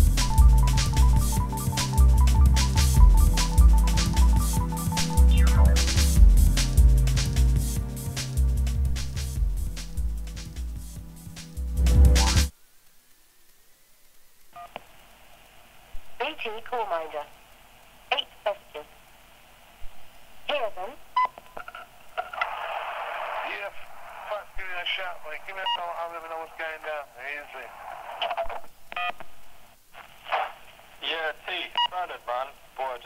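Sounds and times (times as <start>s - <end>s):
speech over telephone line: 16.2s - 17.3s, 18.1s - 18.9s, 20.5s - 21.0s, 23.5s - 28.6s, 31.0s - 33.0s.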